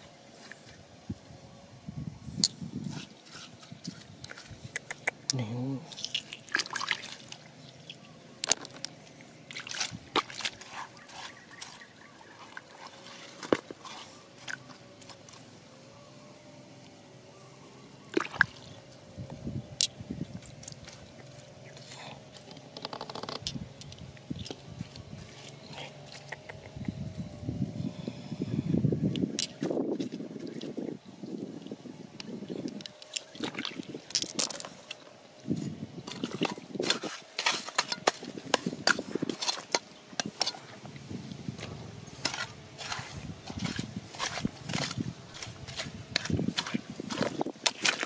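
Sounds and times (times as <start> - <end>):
dribbling water: 3.9 - 15.4, 18.0 - 18.8, 32.4 - 35.1
sharp clicks: 4.7 - 5.4
wet squelching: 5.9 - 15.4, 18.0 - 18.8, 33.1 - 35.0, 42.1 - 48.0
fingers scraping wet clay: 41.6 - 48.0.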